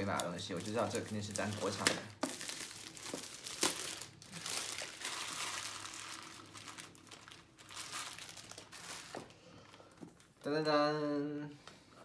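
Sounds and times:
plastic bag crinkling and tearing: 0.0s - 9.4s.

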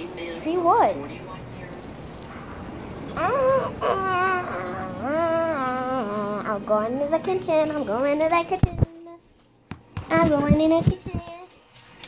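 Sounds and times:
child squealing: 3.2s - 6.4s.

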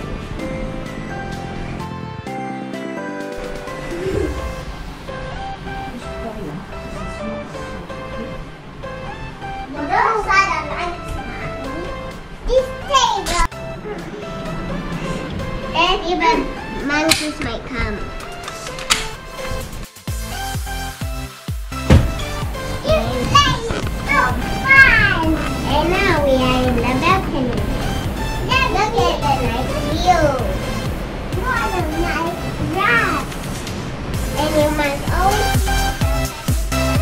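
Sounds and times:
background music: 0.0s - 37.0s
young children talking: 9.6s - 18.2s, 22.8s - 30.7s, 31.3s - 33.4s, 34.2s - 35.8s
children calling out: 22.8s - 27.8s.

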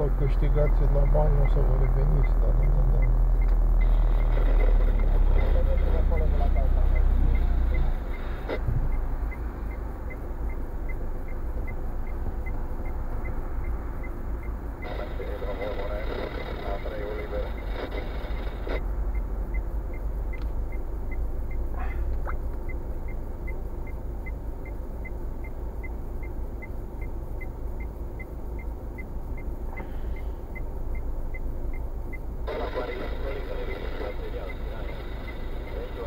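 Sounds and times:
car engine idle rumble: 0.0s - 36.0s
turn signal ticking: 0.0s - 36.0s.

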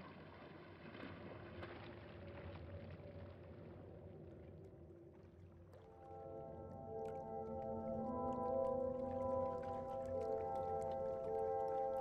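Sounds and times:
faint muffled water: 0.0s - 12.0s.

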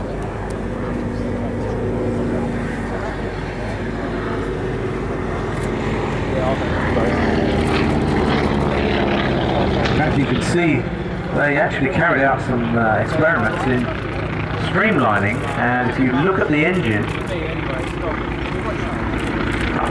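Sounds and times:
aircraft radial engine droning: 0.0s - 19.9s.

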